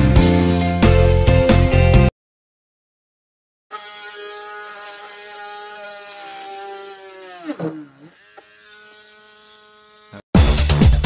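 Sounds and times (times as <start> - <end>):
electric rotary grinder whining: 3.7 - 10.2.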